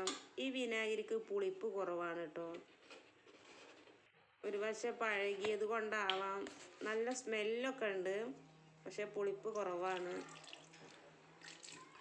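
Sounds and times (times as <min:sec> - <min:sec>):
water pouring into pan: 0:09.9 - 0:12.0.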